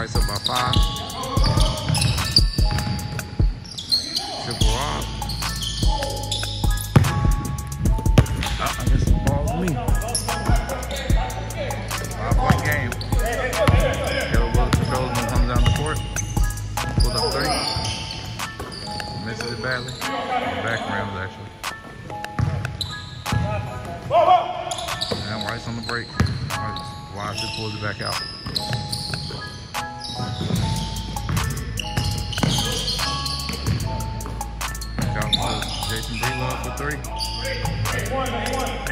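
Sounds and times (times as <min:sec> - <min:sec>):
players calling out: 0:00.0 - 0:38.9
basketball bouncing on hardwood floor: 0:01.4 - 0:03.6, 0:06.9 - 0:08.6, 0:22.4 - 0:23.5, 0:26.2 - 0:26.5, 0:30.2 - 0:32.8.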